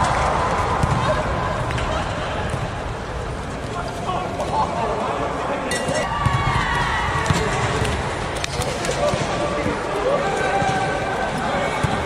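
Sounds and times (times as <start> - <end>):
players chatting: 0.0 - 6.1, 7.2 - 12.0
volleyball bouncing on floor: 0.8 - 1.8.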